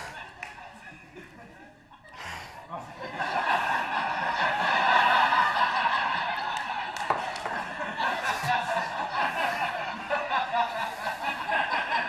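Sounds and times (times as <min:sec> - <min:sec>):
audience laughing: 0:00.0 - 0:12.0.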